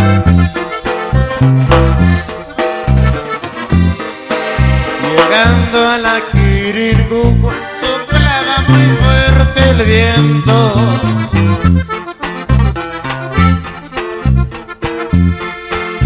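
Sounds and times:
accordion melody: 0:00.0 - 0:16.0
bouncing bass rhythm: 0:00.0 - 0:16.0.

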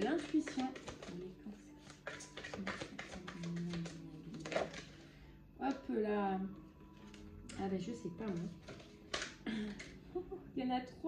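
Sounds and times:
cards being shuffled: 0:00.0 - 0:05.0, 0:08.2 - 0:10.0
soft music with low notes: 0:00.0 - 0:11.0.

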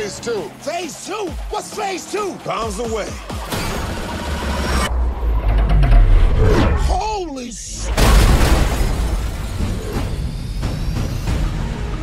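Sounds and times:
trailer music: 0:00.0 - 0:12.0
car engine noise: 0:03.3 - 0:07.0
deep low rumble: 0:04.5 - 0:06.9.

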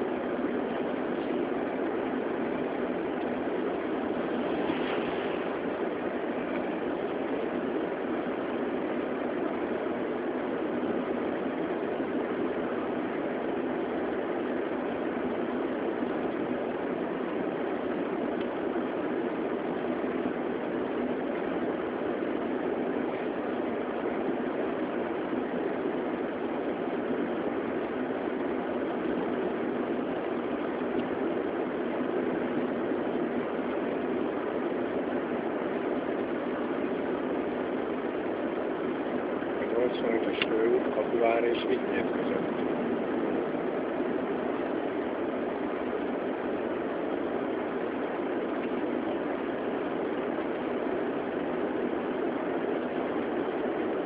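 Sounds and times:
car engine and tyre noise: 0:00.0 - 0:54.0.

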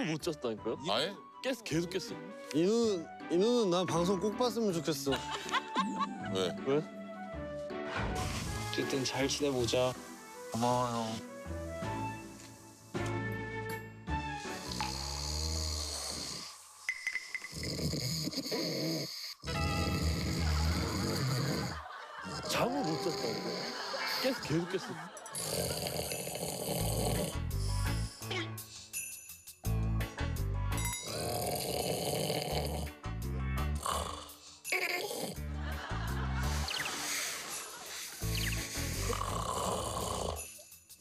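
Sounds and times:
background music: 0:00.0 - 0:41.0
man snoring heavily: 0:14.4 - 0:16.9, 0:17.5 - 0:24.4, 0:25.4 - 0:28.1, 0:31.0 - 0:33.0, 0:33.7 - 0:35.5, 0:37.2 - 0:40.6.

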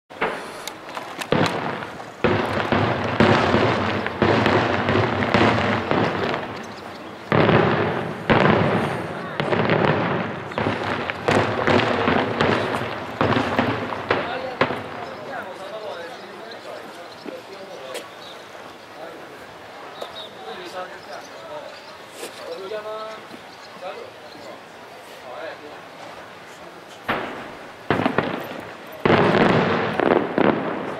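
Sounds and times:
fireworks bangs and crackling: 0:00.1 - 0:19.3, 0:25.2 - 0:30.9.

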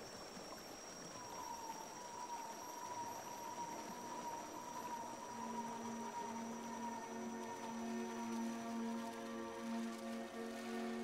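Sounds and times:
high sustained music note: 0:01.0 - 0:11.0.

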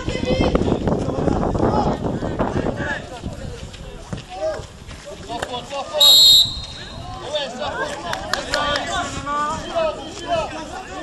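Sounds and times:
referee's whistle blast: 0:06.0 - 0:07.0
players calling out: 0:06.0 - 0:07.6.

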